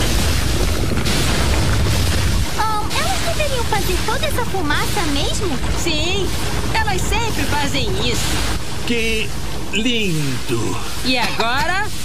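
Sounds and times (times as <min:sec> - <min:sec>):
hissing puffs: 0:00.0 - 0:11.2
heavy low machinery rumble: 0:00.0 - 0:12.0.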